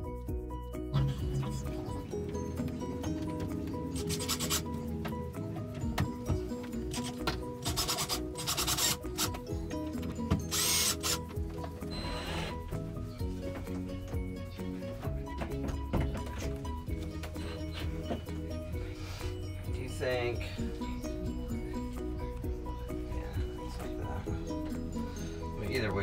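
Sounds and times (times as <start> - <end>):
background music: 0.0 - 26.0
cordless drill driving screws: 6.9 - 9.5, 10.4 - 11.3.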